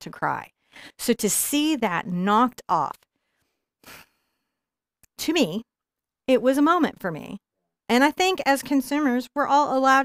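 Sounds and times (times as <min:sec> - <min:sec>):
woman breathing: 0:00.6 - 0:01.0, 0:03.1 - 0:04.8.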